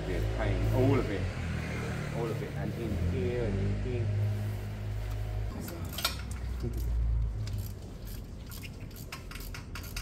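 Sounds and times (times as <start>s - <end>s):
metal tools clinking: 5.5s - 10.0s.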